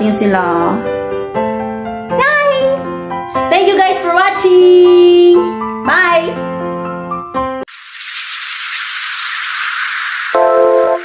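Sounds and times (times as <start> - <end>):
high hissing shaker sound: 7.7 - 11.0.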